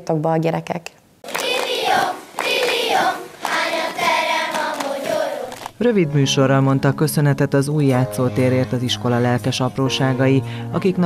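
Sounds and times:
children's choir singing: 1.3 - 5.6.

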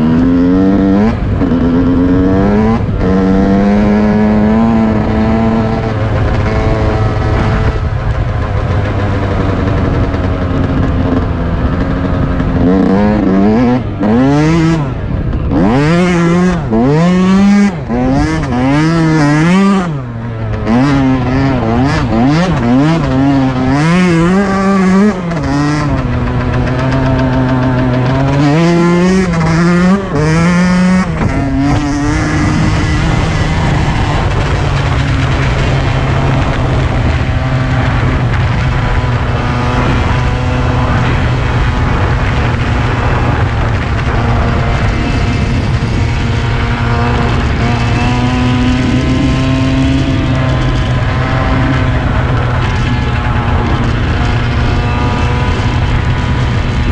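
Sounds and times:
dirt bike engine revving: 0.0 - 56.9.

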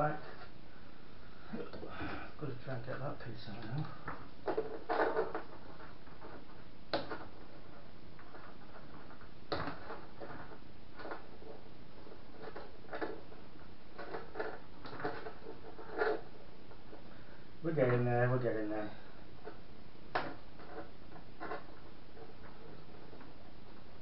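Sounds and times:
steady background hiss: 0.0 - 24.0.

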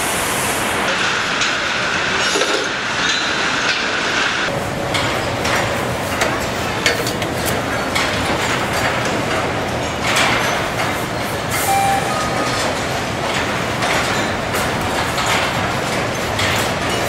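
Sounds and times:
conveyor running: 0.0 - 17.0
brief high tones: 11.6 - 12.9.

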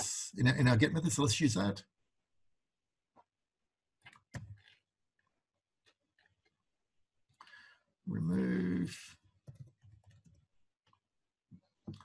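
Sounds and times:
keyboard and mouse clicks: 4.0 - 4.8, 9.4 - 11.0.

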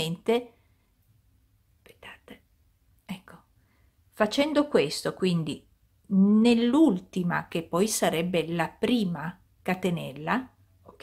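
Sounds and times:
woman whispering: 1.8 - 3.5.

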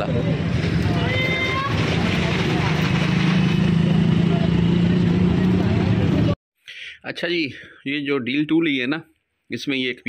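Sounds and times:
street traffic engine hum: 0.0 - 6.4.

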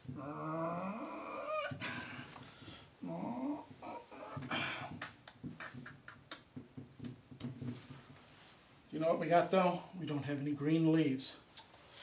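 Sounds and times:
marker squeaking on whiteboard: 3.6 - 7.6.

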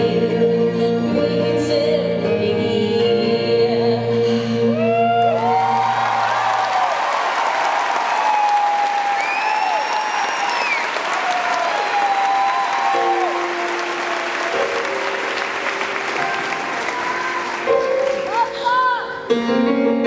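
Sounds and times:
shouts from audience: 5.0 - 14.7
audience applauding: 5.2 - 18.6.

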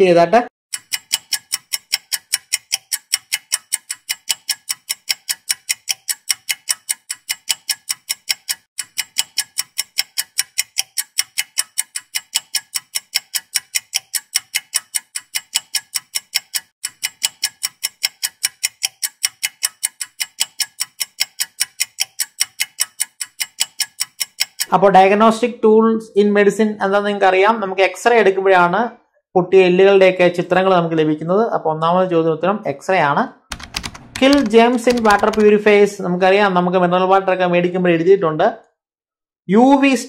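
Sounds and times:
clock ticking: 0.7 - 24.8, 33.5 - 35.6.

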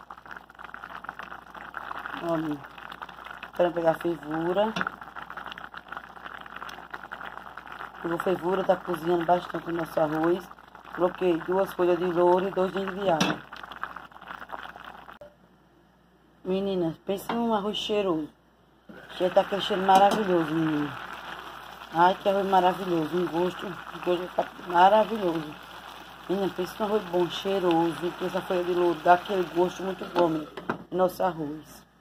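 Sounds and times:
rice boiling in a pot: 0.0 - 15.3, 18.8 - 31.6.

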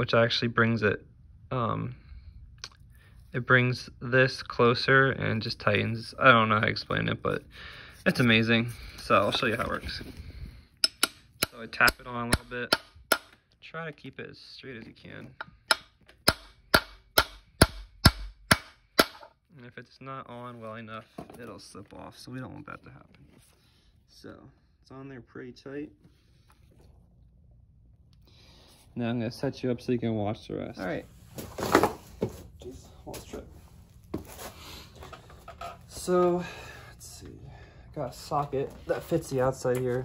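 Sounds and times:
shuffling and rustling: 8.0 - 10.6, 30.9 - 36.1
hammer striking metal: 10.8 - 13.4, 15.4 - 19.3.

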